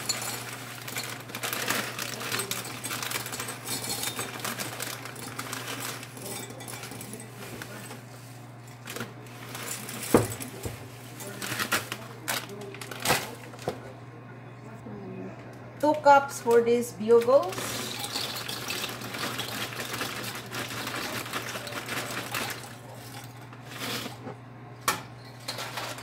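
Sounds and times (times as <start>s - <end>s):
pretzel sticks pouring into glass cup: 0.0s - 7.8s, 17.5s - 24.1s
plastic bag crinkling: 0.0s - 7.9s, 11.2s - 13.6s, 17.4s - 24.2s.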